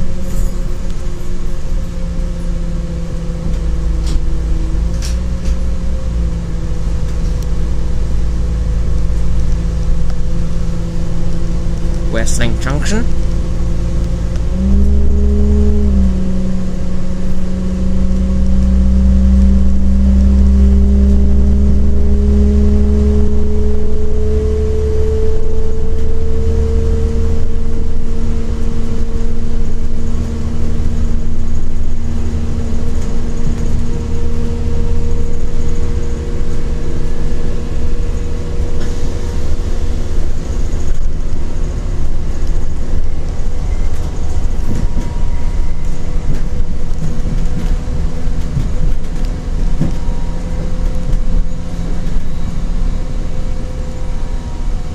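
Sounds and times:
train diesel engine droning: 0.0 - 54.9.

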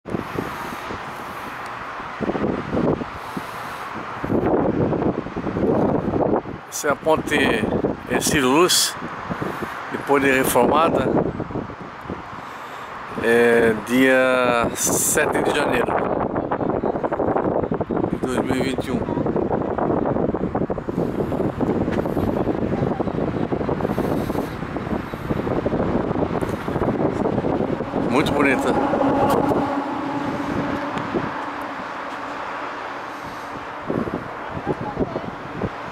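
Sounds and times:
low road rumble: 0.0 - 35.9
wind buffeting microphone: 0.0 - 35.9.

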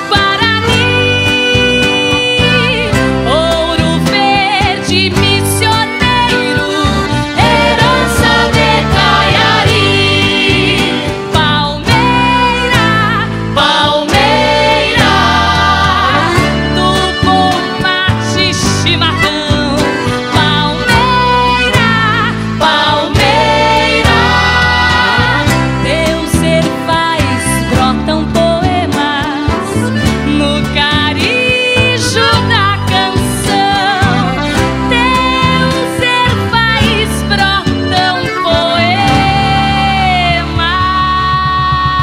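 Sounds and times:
acoustic guitar: 0.0 - 42.0
bass: 0.0 - 42.0
woman singing with vibrato: 0.0 - 42.0.

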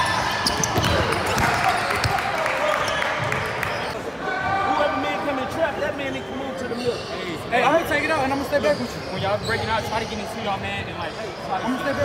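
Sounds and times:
basketballs bouncing on wooden floor: 0.4 - 2.2.

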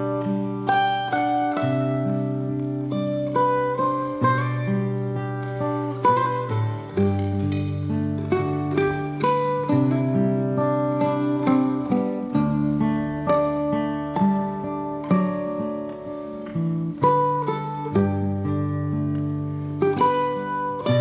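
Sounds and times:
fingerpicked acoustic guitar: 0.0 - 21.0
mandolin melody: 0.0 - 21.0.

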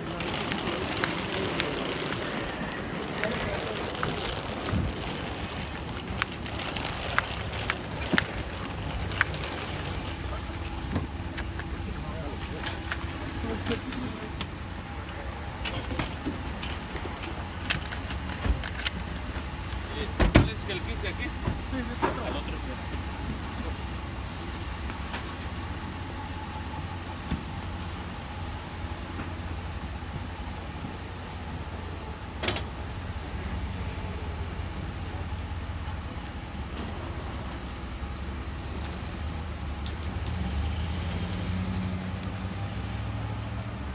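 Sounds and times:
truck engines idling: 0.0 - 43.9
truck pulling away: 0.0 - 43.9.

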